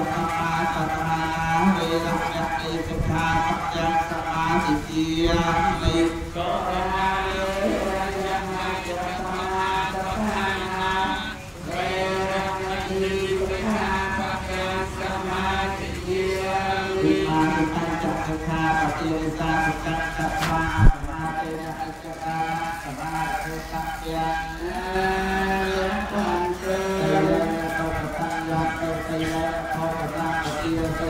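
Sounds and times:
monks chanting in unison: 0.0 - 31.0.

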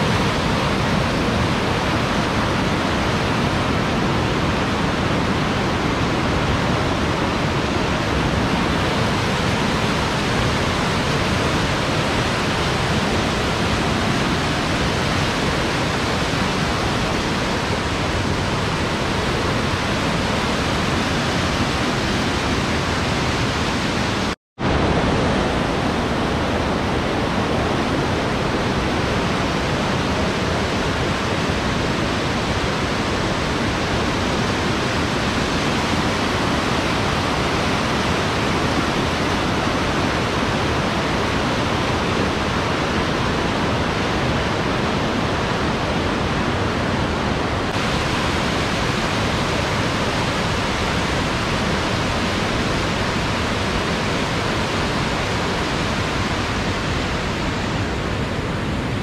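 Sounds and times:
river rapids rushing over boulders: 0.0 - 59.0.

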